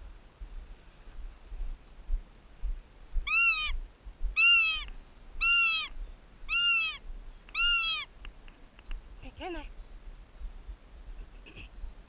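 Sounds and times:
hawk wailing calls: 0:03.3 - 0:03.8, 0:04.4 - 0:08.1.

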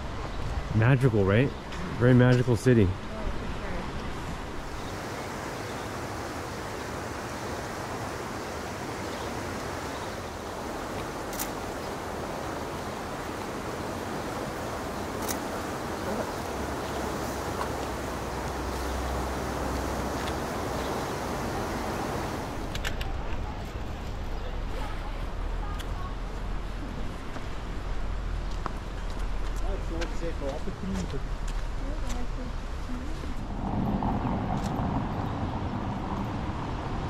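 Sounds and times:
fast-flowing river rushing: 0:03.7 - 0:22.8
low rumble: 0:32.7 - 0:37.0.

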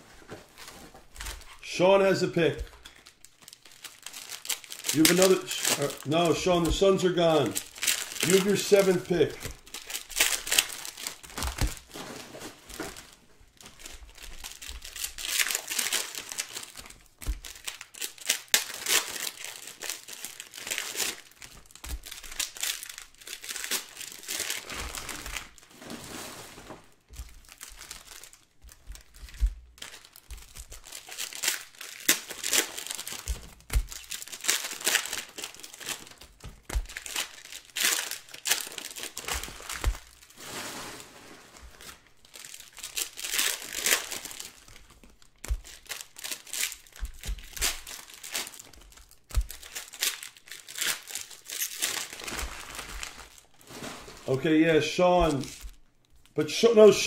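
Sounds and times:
plastic wrapping crinkling: 0:00.0 - 0:57.0.

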